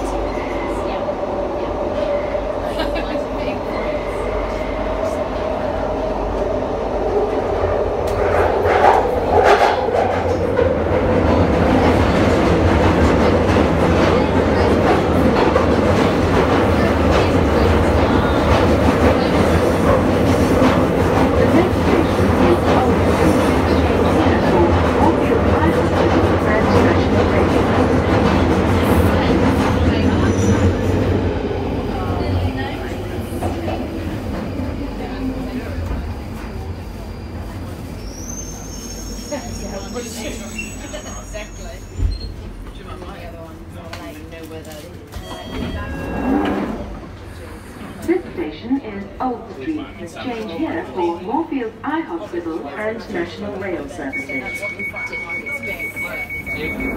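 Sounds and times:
train rumbling through tunnel: 0.0 - 56.9.

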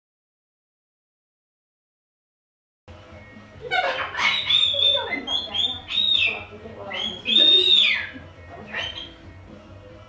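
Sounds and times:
cockatoo calling: 3.6 - 9.3.

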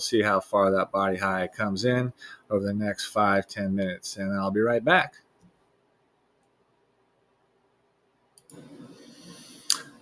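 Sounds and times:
short sharp click: 9.7 - 10.0.

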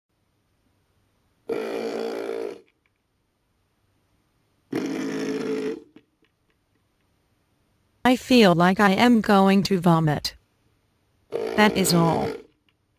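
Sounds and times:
long burps: 1.5 - 2.7, 4.7 - 6.0.

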